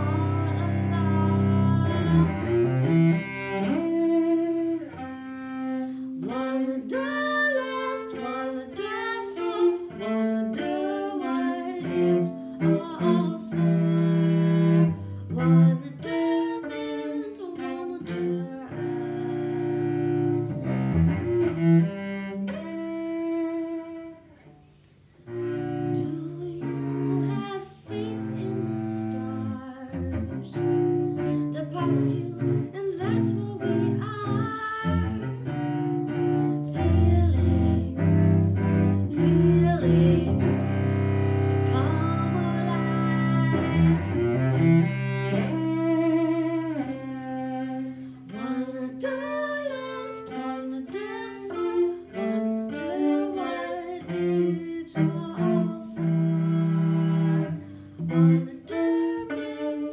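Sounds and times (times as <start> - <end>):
woman singing: 0.0 - 4.1, 6.0 - 20.9, 25.6 - 59.9
bowed cello: 0.0 - 59.9.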